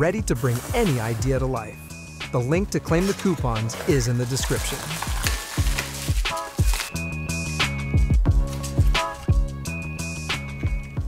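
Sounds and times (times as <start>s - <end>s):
background music with steady beat: 0.0s - 11.0s
bubble wrap crinkling: 3.2s - 7.6s.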